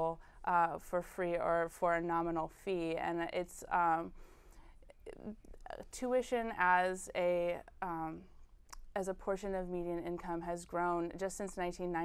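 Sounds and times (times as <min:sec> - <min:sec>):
woman breathing: 0:04.1 - 0:05.0.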